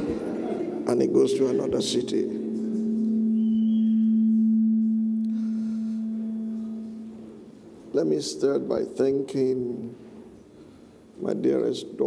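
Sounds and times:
faint higher tone: 0:00.0 - 0:08.4
sustained low note: 0:00.0 - 0:08.4.

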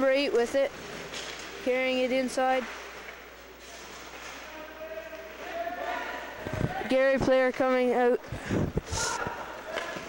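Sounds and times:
hockey sticks and puck clicking: 0:09.6 - 0:10.0.

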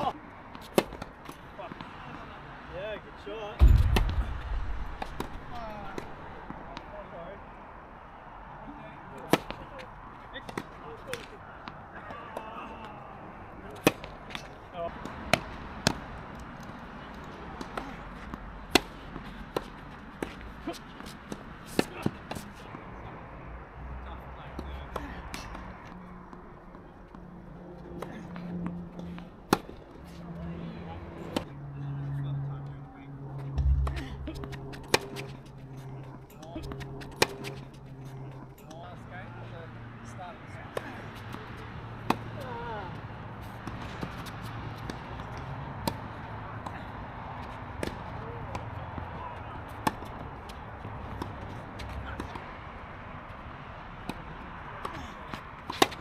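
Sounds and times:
tennis balls struck by rackets: 0:00.0 - 0:02.2, 0:03.6 - 0:06.9, 0:09.2 - 0:09.6, 0:13.7 - 0:16.1, 0:17.4 - 0:22.7, 0:29.4 - 0:29.8, 0:33.4 - 0:35.8, 0:36.4 - 0:38.4, 0:40.7 - 0:46.8, 0:47.4 - 0:52.4, 0:54.0 - 0:56.0
heavy thump: 0:03.6 - 0:06.2, 0:33.6 - 0:35.0
tennis balls bouncing on hard court: 0:03.6 - 0:06.9, 0:33.6 - 0:35.4, 0:49.7 - 0:52.4.

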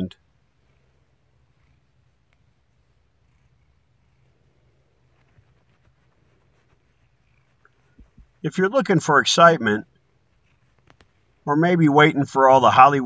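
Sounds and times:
faint cat purring: 0:00.0 - 0:11.8
soft ticks: 0:01.6 - 0:02.5.

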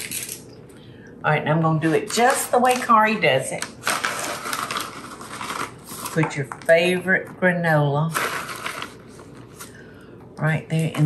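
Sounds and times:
paper bag crinkling: 0:00.0 - 0:00.4, 0:01.8 - 0:06.8, 0:08.1 - 0:09.8.

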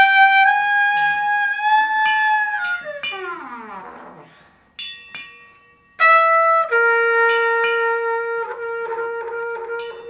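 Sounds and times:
metal percussion plate ringing: 0:00.8 - 0:06.5, 0:07.1 - 0:08.3, 0:09.7 - 0:10.0.

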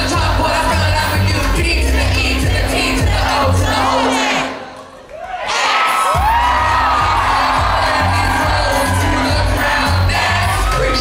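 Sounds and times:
pop dance music with bass beat: 0:00.0 - 0:03.9, 0:06.1 - 0:11.0
crowd cheering: 0:03.6 - 0:11.0.

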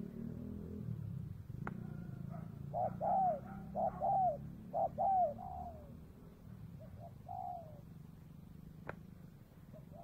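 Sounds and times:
doves cooing: 0:01.6 - 0:09.0, 0:09.6 - 0:10.0.

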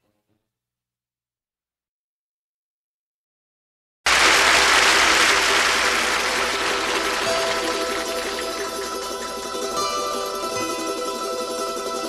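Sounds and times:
applause: 0:04.1 - 0:11.4.

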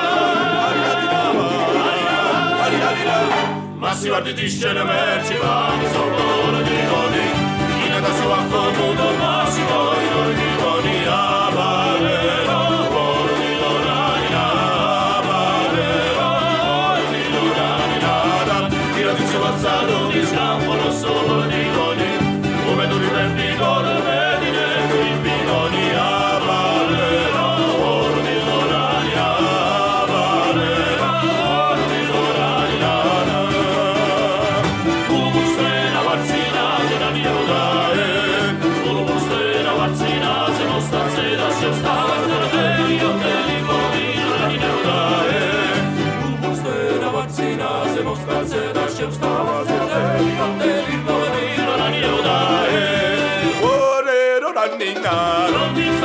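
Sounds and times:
button accordion: 0:00.0 - 0:03.9
held bass notes: 0:00.0 - 0:53.9
keyboard: 0:00.0 - 0:53.9
lute: 0:00.0 - 0:56.0
men singing: 0:00.0 - 0:56.0
plucked long-necked string instrument: 0:00.0 - 0:56.0.

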